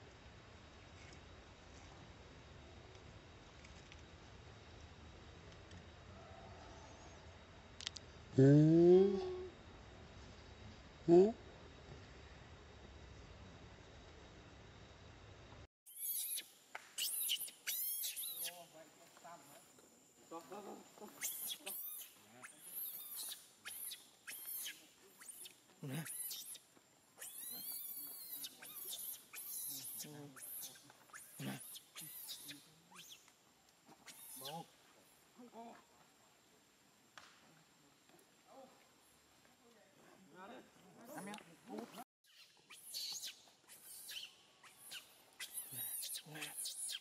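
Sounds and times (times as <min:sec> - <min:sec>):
baby monkey screaming: 0:17.0 - 0:18.5, 0:27.2 - 0:33.2, 0:42.3 - 0:47.0
high falling squeals: 0:42.3 - 0:47.0.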